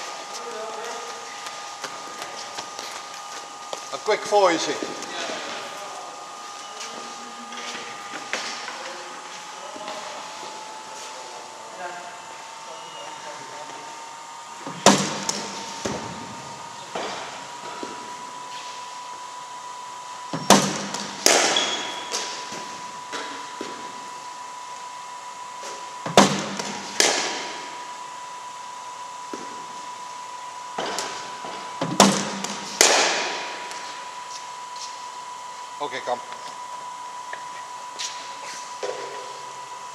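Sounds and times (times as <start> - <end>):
steady hum: 0.0 - 39.9
cricket bat striking ball: 20.4 - 22.3, 26.1 - 27.6, 31.9 - 33.5.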